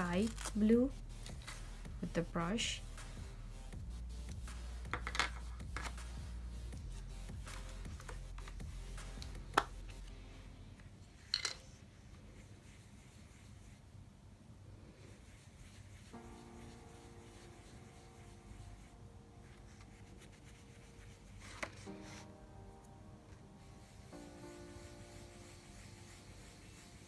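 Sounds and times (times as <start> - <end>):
quiet background music: 0.0 - 27.0
brush rubbing on paper: 12.0 - 14.0, 14.7 - 22.4, 23.3 - 27.0.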